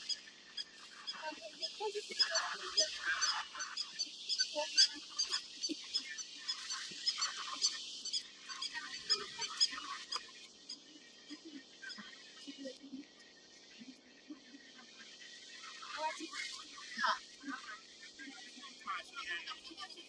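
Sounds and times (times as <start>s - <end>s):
insect chorus chirping: 0.0s - 17.7s.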